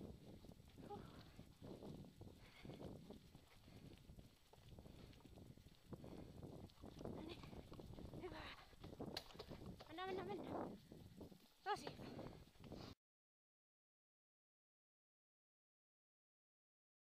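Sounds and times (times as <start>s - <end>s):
kick scooter rolling on dirt trail: 0.0s - 12.9s.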